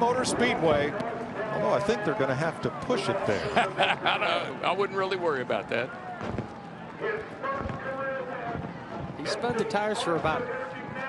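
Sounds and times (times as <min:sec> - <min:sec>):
people celebrating: 0:00.1 - 0:11.0
low thumps: 0:06.2 - 0:06.7, 0:07.4 - 0:11.0.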